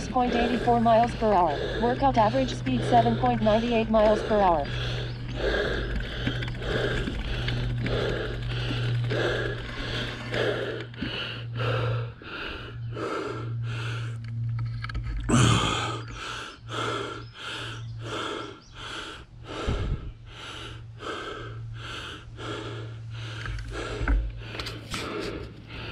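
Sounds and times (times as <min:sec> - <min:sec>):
person breathing hard: 0:00.0 - 0:14.7, 0:15.3 - 0:25.9
steady low hum: 0:00.0 - 0:25.9.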